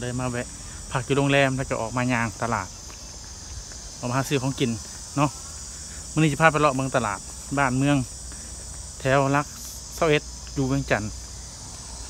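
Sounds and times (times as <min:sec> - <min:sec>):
man talking: 0:00.0 - 0:02.8, 0:04.0 - 0:05.5, 0:06.1 - 0:08.2, 0:09.0 - 0:11.2
high-pitched insect chorus: 0:00.0 - 0:12.0.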